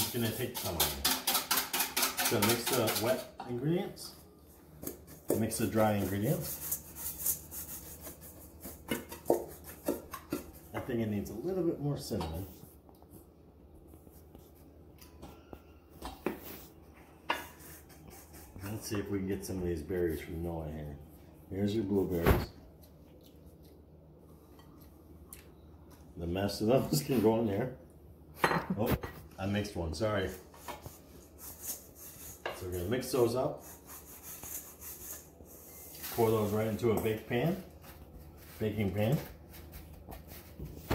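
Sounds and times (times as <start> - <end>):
wooden spoon scraping a steel bowl: 0.0 - 3.6, 30.2 - 40.6
wooden spoon scraping metal bowl: 0.0 - 3.6.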